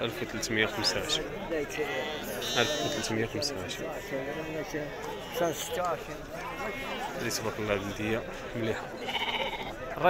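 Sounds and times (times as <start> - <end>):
men's voices: 0.0 - 9.1
sheep bleating: 1.7 - 3.2, 4.0 - 6.0, 9.0 - 9.8.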